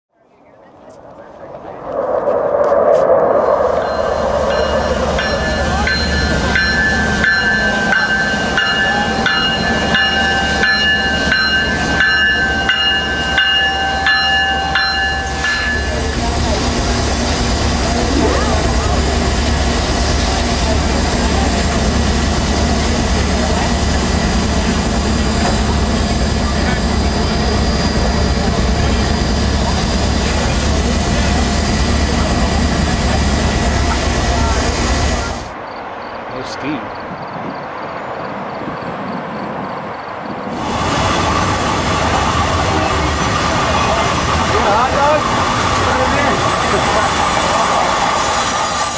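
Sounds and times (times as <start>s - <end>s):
crowd voices: 0.3s - 35.6s, 40.5s - 48.9s
steam locomotive hissing and rumbling: 1.9s - 35.6s, 40.4s - 48.9s.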